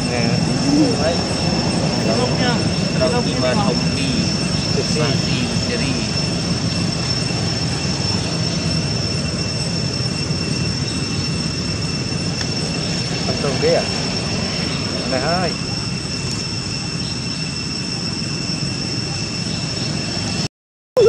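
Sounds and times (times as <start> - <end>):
outdoor background rumble: 0.0 - 17.4
high steady tones: 0.0 - 20.4.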